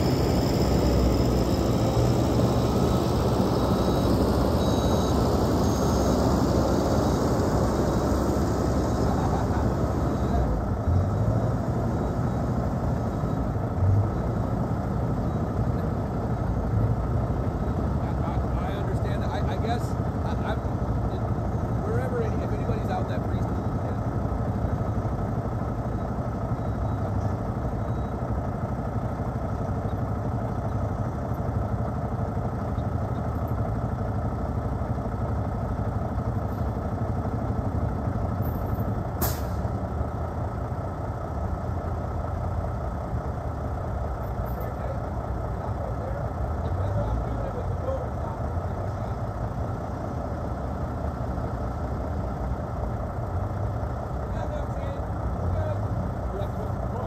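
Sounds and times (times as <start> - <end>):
diesel truck engine idling: 0.0 - 57.0.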